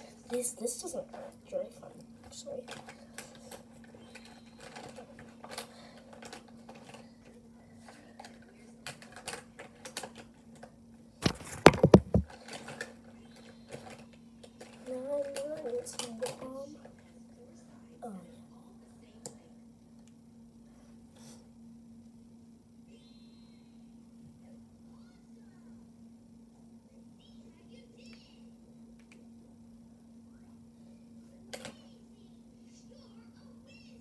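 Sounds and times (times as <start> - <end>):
steady low hum: 0.0 - 34.0
makeup items clicking and tapping: 11.3 - 12.4.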